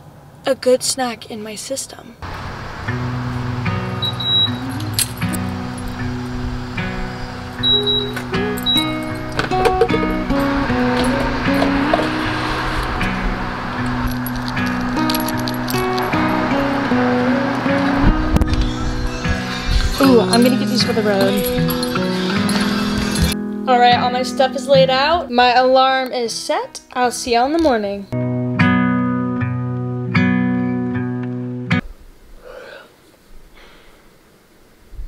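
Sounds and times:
background music with held notes: 2.8s - 25.8s.

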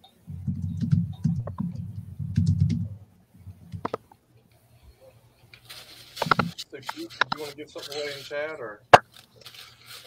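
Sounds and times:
typing on laptop keyboard: 0.4s - 2.9s.

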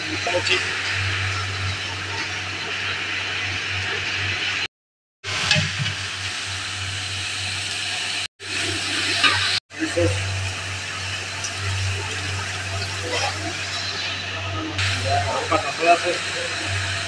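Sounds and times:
hot oil sizzling in a pot: 0.0s - 17.0s.

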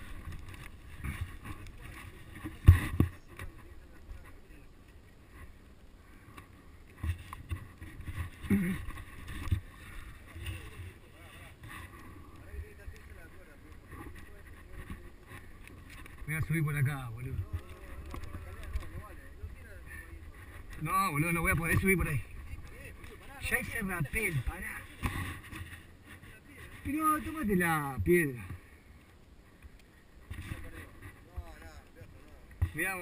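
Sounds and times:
camera rubbing and knocking: 0.0s - 4.4s, 6.3s - 28.6s, 29.6s - 33.0s.

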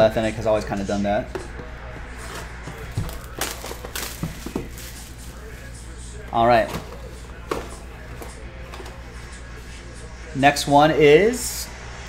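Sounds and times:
wrapping crinkling: 2.2s - 9.1s.

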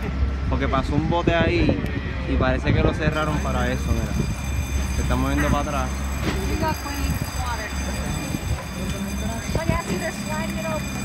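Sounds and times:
people chatting: 5.0s - 11.0s.

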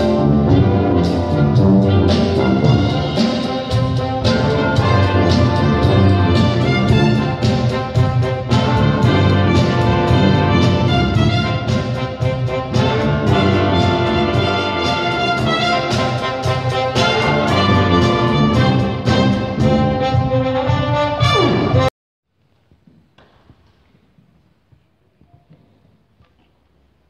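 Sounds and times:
brass band with drums: 0.0s - 21.9s.

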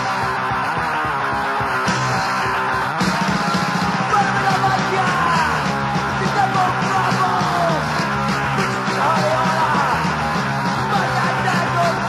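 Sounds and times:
crust punk metal music: 0.0s - 12.0s
shouted vocals: 3.0s - 12.0s.

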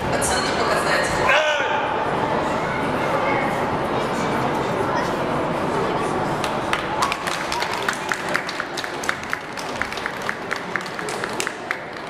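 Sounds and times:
crowd murmur: 0.0s - 12.0s
spectators clapping: 6.4s - 12.0s.

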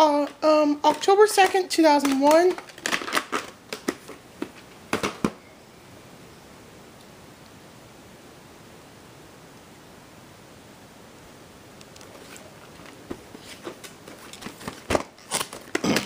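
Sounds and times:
faint steady hiss: 0.0s - 16.0s
plastic tape cases clicking and tapping: 0.2s - 5.4s
sharp plastic clacks: 0.2s - 5.4s.

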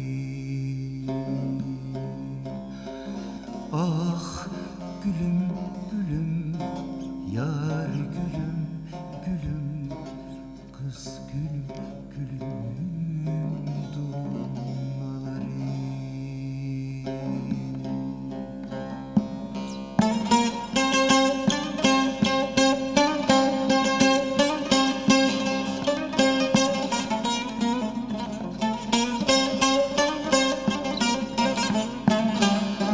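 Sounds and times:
long-necked lute playing: 0.0s - 32.9s.

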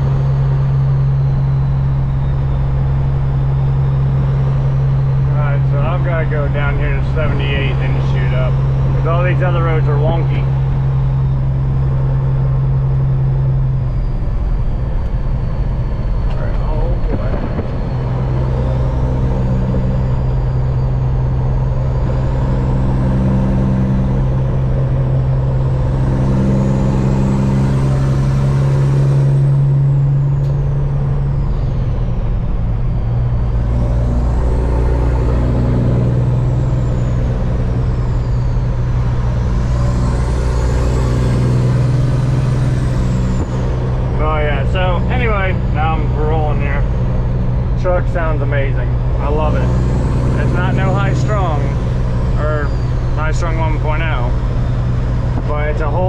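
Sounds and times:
truck diesel engine drone: 0.0s - 56.0s.

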